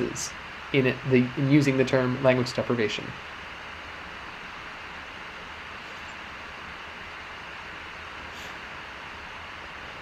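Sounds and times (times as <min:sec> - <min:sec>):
background hiss: 0:00.0 - 0:10.0
faint low hum: 0:00.0 - 0:10.0.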